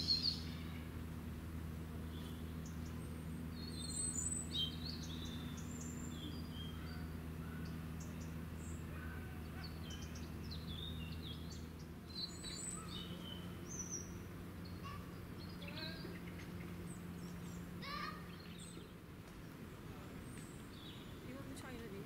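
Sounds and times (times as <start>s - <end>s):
small birds chirping: 0.0s - 22.0s
steady low hum: 0.0s - 22.0s.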